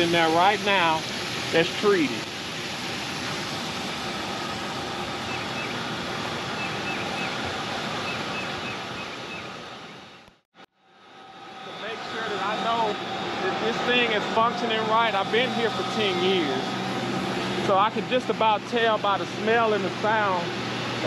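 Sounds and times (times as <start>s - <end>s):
equipment and rushing water: 0.0s - 10.4s.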